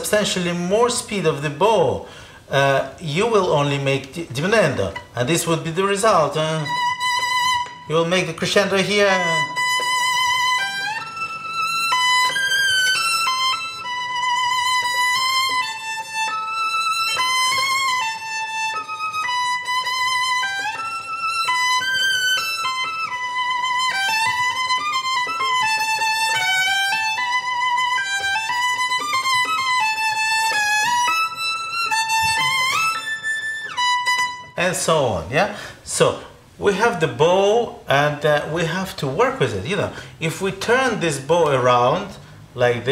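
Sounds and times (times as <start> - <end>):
solo violin melody: 0.0 - 34.8.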